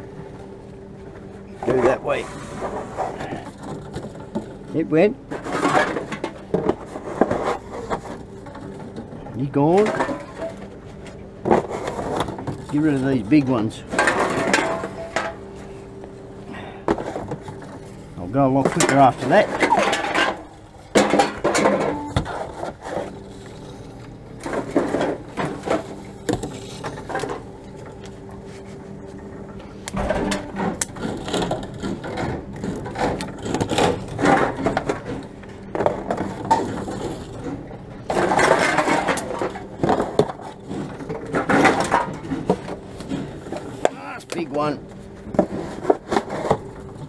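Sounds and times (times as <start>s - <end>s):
machine low hum: 0.0s - 47.0s
cans and bottles rattling: 18.6s - 23.3s, 30.0s - 44.5s.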